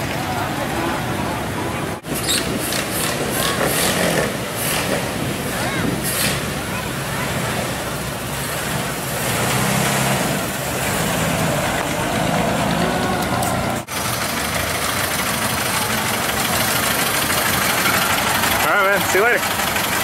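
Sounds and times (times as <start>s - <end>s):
car engine running close by: 0.0s - 20.0s
old car engines passing: 0.0s - 20.0s.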